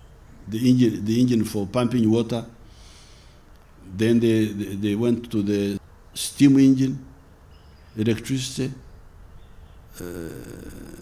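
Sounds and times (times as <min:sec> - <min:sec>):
low background hum: 0:00.0 - 0:11.0
man saying uh: 0:10.0 - 0:11.0.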